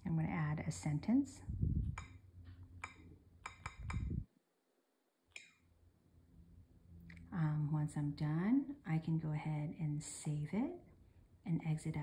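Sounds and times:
soft low thump: 0:01.5 - 0:02.1, 0:03.6 - 0:04.2.

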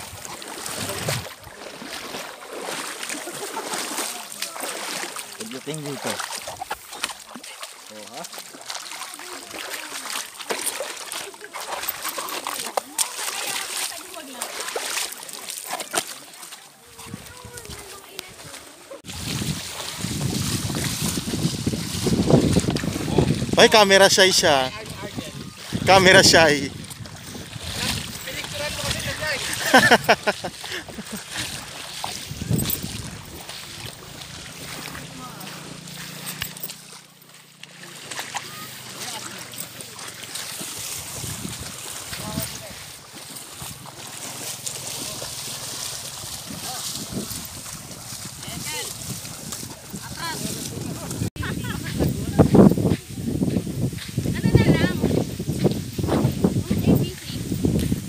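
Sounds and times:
feet wading through water: 0:00.0 - 0:58.0
people's voices: 0:03.0 - 0:36.8, 0:37.6 - 0:43.0, 0:43.6 - 0:55.3, 0:56.0 - 0:57.6.

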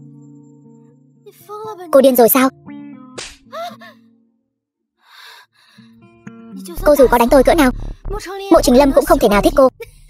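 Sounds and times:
faint background music: 0:00.0 - 0:04.0, 0:05.8 - 0:10.0
woman gasping: 0:03.5 - 0:04.0, 0:05.1 - 0:06.0.

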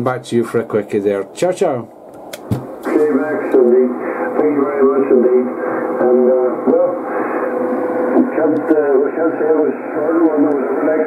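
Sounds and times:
sharp clicks: 0:02.1 - 0:02.7
man's voice over radio: 0:02.8 - 0:11.0.

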